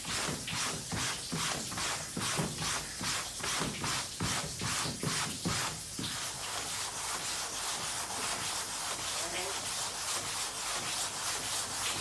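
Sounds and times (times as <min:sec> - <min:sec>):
scrub brush scrubbing wet cloth: 0:00.0 - 0:12.0.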